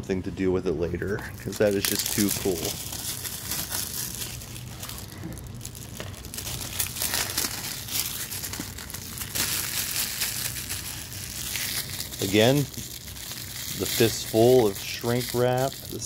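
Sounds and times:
shrink wrap crinkling: 1.0 - 16.0.

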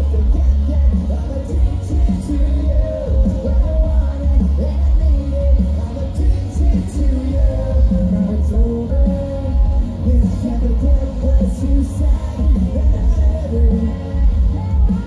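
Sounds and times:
live pop-punk band playing: 0.0 - 15.0
person singing: 0.0 - 15.0.

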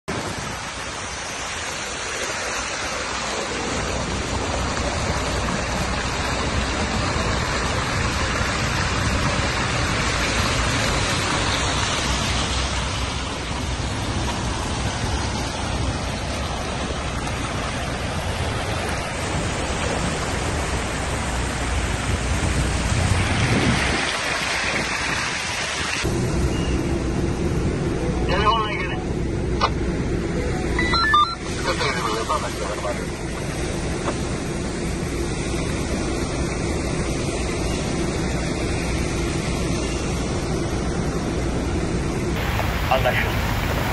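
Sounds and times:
floodwater rushing: 0.1 - 43.9.

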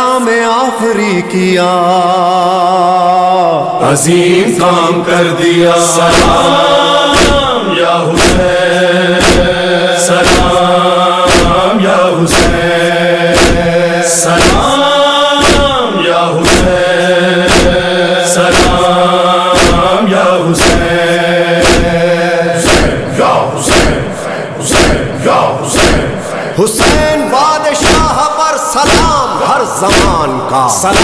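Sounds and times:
chorus chanting a refrain: 0.0 - 31.0
steady beat: 6.1 - 31.0.

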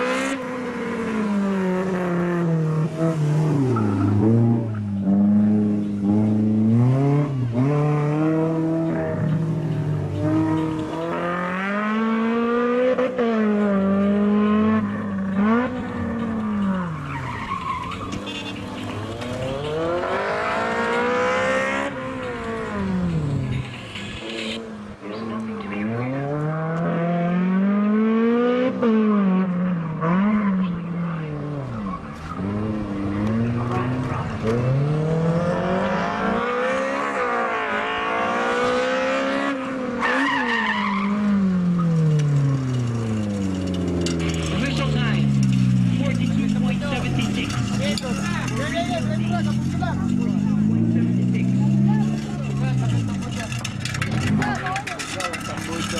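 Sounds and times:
car engine revving: 0.0 - 55.9
tyres squealing: 15.4 - 21.1, 39.9 - 55.9.

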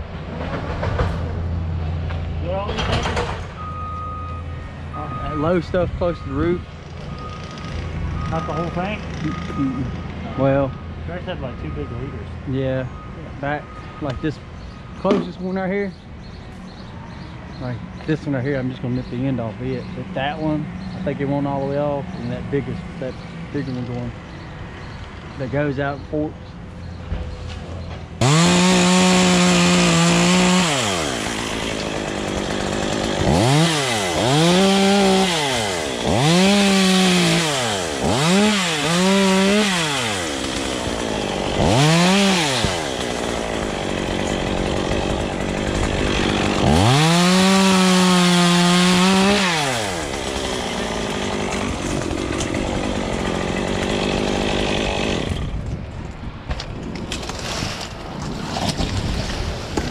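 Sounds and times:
chainsaw revving: 8.9 - 10.0, 28.2 - 55.6.

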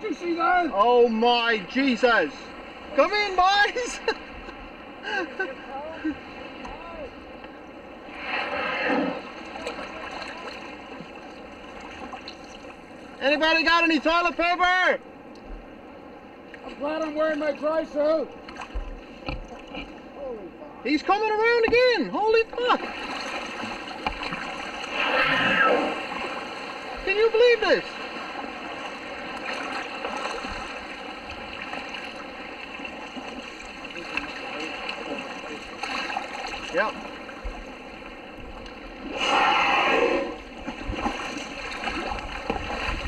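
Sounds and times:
rushing water whoosh: 0.0 - 14.5, 22.5 - 43.0
water splashing around a kayak: 0.0 - 43.0
whale blowing breath: 8.0 - 9.4.

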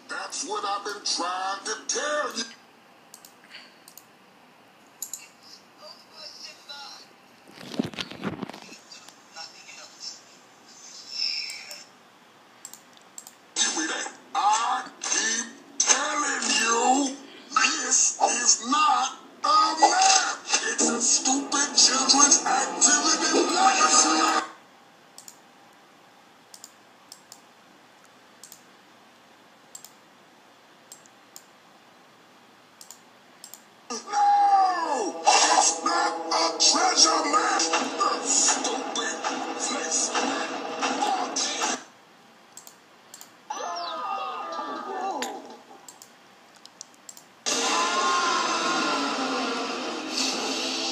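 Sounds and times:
faint clicks: 3.1 - 4.1, 12.6 - 13.4, 25.2 - 25.4, 26.5 - 28.7, 29.7 - 30.0, 30.9 - 31.5, 32.8 - 33.7, 42.5 - 43.3, 45.9 - 47.3
computer mouse buttons clicking: 5.0 - 5.3, 12.6 - 13.4, 25.2 - 25.4, 26.5 - 27.4, 28.4 - 28.6, 29.7 - 30.0, 42.5 - 43.3.

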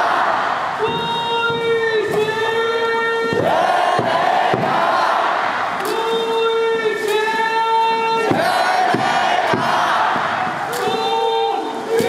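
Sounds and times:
crowd chanting in unison: 0.0 - 0.9, 3.4 - 6.4, 8.2 - 12.0
sharp beats: 3.2 - 6.3.

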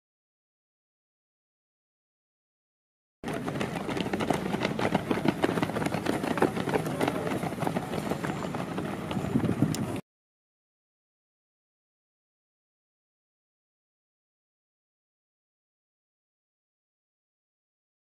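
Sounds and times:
runners' footfalls on dirt: 3.2 - 10.0.

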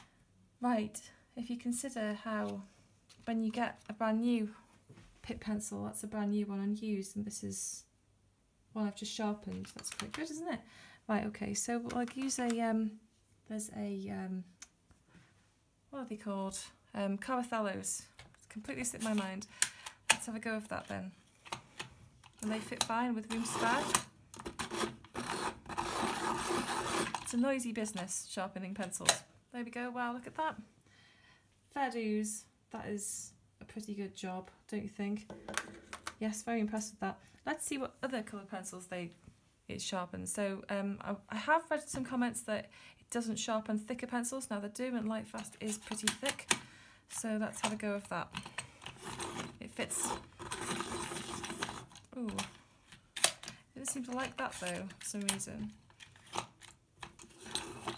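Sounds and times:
pencil sharpener grinding: 22.4 - 27.3, 48.5 - 52.5, 56.0 - 57.9.

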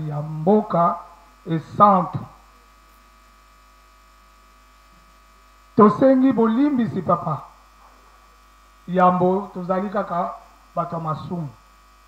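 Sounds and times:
man's voice: 0.0 - 2.4, 5.8 - 7.5, 8.9 - 11.6
electrical hum: 0.0 - 12.0.

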